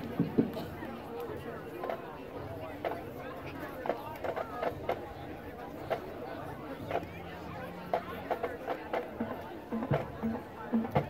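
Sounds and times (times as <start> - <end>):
crowd murmur: 0.0 - 11.0.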